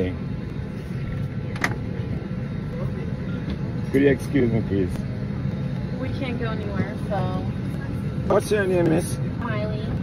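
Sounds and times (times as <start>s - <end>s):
low background rumble: 0.0s - 10.0s
faint voices: 1.0s - 6.0s.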